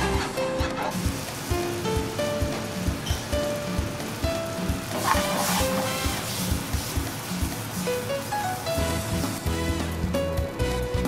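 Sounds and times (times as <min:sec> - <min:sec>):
food sizzling in metal pan: 0:00.0 - 0:10.2
background music with steady beat: 0:00.0 - 0:11.0.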